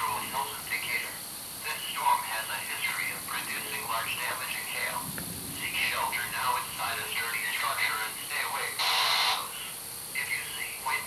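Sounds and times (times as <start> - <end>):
steady high hiss: 0.0 - 11.0
whispered voices: 0.0 - 11.0.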